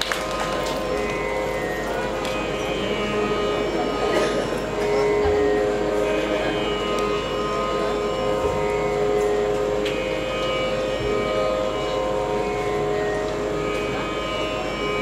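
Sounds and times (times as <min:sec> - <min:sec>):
steady drone: 0:00.0 - 0:15.0.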